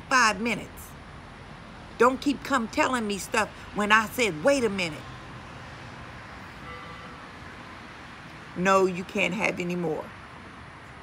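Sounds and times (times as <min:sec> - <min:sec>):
distant traffic rumble: 0:00.0 - 0:11.0
far-off horn: 0:06.6 - 0:07.3.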